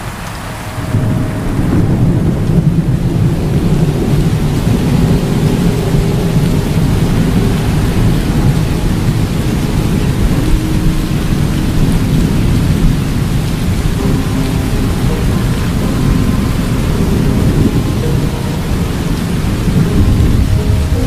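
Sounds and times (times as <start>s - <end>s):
heavy rain: 0.0s - 21.0s
low rumble of thunder: 0.0s - 21.0s.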